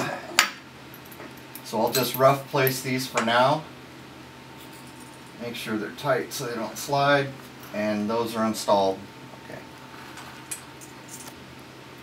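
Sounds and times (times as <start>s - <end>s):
faint light scrapes and clinks: 4.6s - 5.4s.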